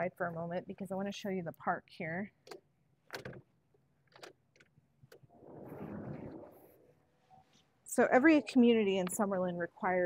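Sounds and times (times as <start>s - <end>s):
soft rush of noise: 5.3s - 8.3s.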